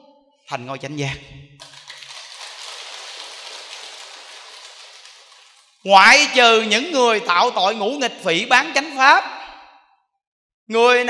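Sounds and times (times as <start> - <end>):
audience applauding: 1.6 - 5.8.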